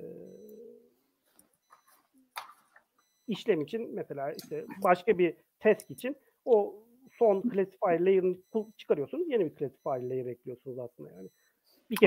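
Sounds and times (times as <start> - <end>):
man's drawn-out hesitation sound: 3.3 - 11.3.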